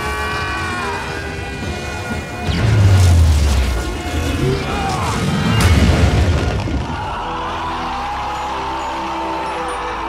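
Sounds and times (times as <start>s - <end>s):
film score music: 0.0s - 10.0s.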